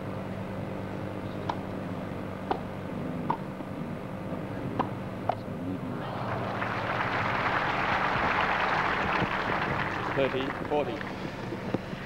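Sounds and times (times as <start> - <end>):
steady low hum: 0.0 - 12.0
crowd applause: 5.9 - 12.0.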